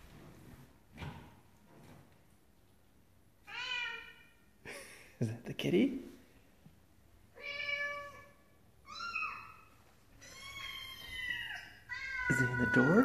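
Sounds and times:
cat meowing: 0:03.5 - 0:04.3, 0:07.4 - 0:13.0.

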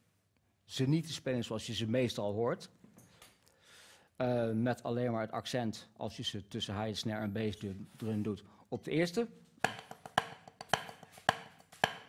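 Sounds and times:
drumsticks on a practice pad: 0:09.6 - 0:12.0.

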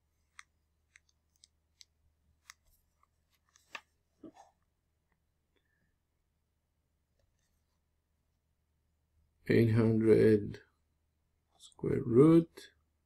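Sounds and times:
small clicks and taps: 0:00.3 - 0:03.9.

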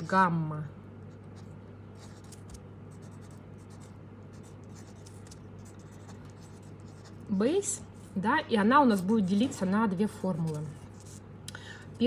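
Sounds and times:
pen scratching on paper: 0:01.2 - 0:08.1, 0:08.8 - 0:11.2.

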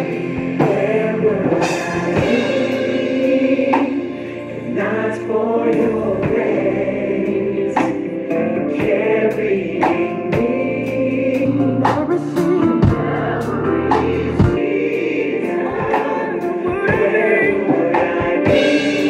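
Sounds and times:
gospel choir singing: 0:00.0 - 0:19.0
live band playing: 0:09.8 - 0:14.8
snare and cymbal crashes: 0:18.0 - 0:19.0.

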